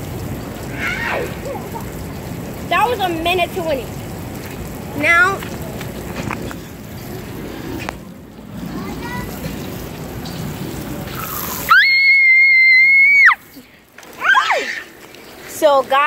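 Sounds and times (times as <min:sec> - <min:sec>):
sprinkler water spraying: 0:00.0 - 0:16.0.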